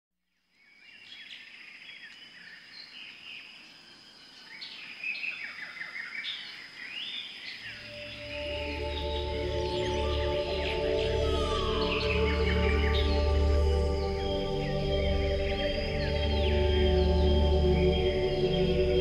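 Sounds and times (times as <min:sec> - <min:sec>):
birds chirping: 0:04.5 - 0:19.0
steady high tone: 0:07.7 - 0:19.0
sustained ambient music: 0:07.7 - 0:19.0.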